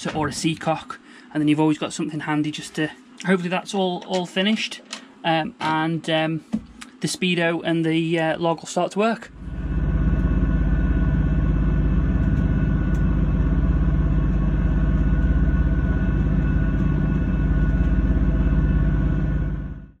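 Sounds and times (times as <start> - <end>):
boat engine running: 9.3 - 20.0.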